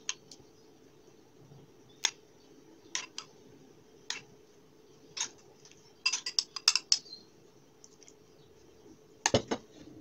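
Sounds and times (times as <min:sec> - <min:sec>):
spoon clinking on dish: 0:06.0 - 0:07.0.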